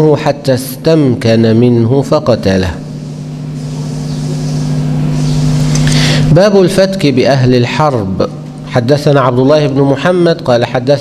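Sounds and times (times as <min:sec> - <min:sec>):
low motor hum: 0:02.0 - 0:09.1.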